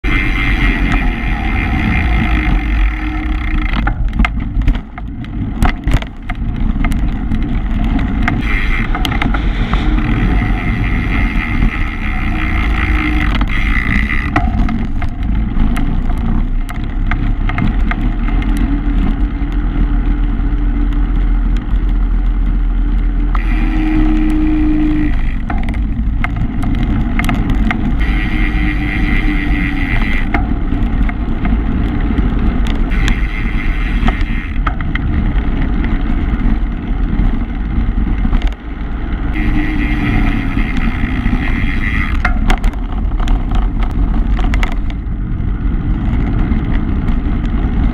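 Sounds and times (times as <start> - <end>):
bicycle rolling rumble: 0.0 - 47.9
wind buffeting microphone: 0.0 - 47.9.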